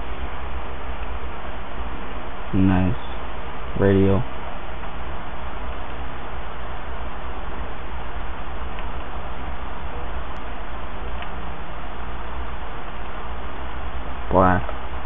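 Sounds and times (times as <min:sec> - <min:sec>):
microphone hiss: 0:00.0 - 0:15.0
computer mouse clicks: 0:08.7 - 0:09.1, 0:11.1 - 0:11.4.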